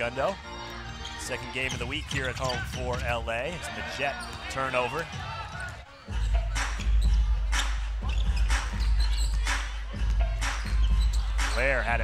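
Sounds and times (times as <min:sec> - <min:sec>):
basketball bouncing on court: 0:01.7 - 0:03.6, 0:04.2 - 0:11.6
music with heavy bass beat: 0:06.1 - 0:12.0.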